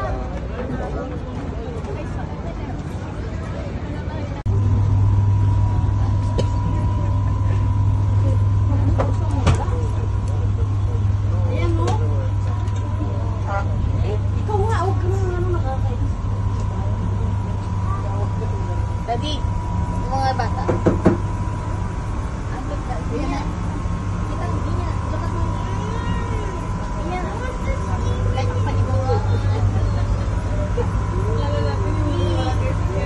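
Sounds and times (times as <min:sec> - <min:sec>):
boat engine hum: 0:00.0 - 0:33.0
thin steady whine: 0:00.0 - 0:33.0
sharp knocks: 0:20.6 - 0:21.2.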